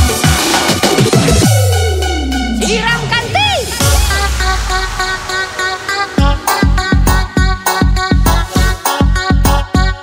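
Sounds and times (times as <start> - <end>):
held synth bass: 0.0 - 9.7
horn-like synth riff: 1.6 - 10.0.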